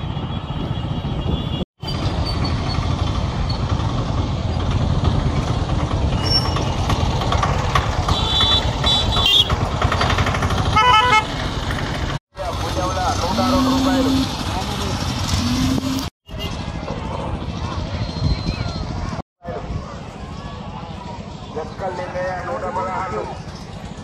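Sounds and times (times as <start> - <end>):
vehicle horns: 0.0 - 1.7, 8.0 - 9.7, 10.6 - 11.4, 13.2 - 14.6
motor vehicles rumbling: 0.0 - 24.0
people's voices: 12.4 - 16.0.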